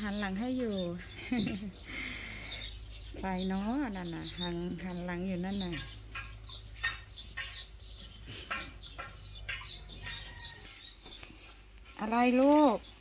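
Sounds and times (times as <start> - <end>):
small birds chirping: 0.0 - 13.0.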